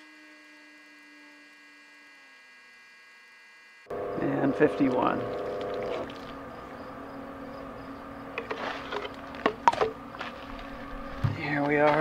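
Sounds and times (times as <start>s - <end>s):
electric pump humming: 0.0s - 12.0s.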